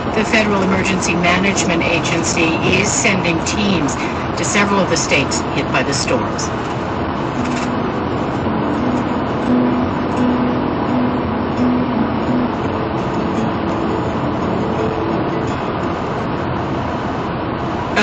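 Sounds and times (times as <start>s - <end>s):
car road and tyre noise: 0.0s - 18.0s.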